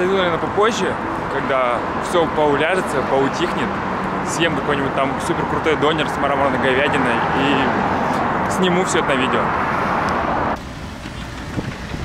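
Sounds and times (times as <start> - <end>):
road traffic going by: 0.0 - 12.0.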